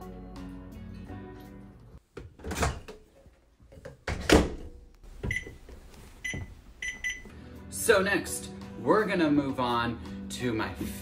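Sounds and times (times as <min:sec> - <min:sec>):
background music: 0:00.0 - 0:02.0, 0:06.6 - 0:11.0
microwave keypad beeps: 0:05.3 - 0:05.6, 0:06.2 - 0:07.3.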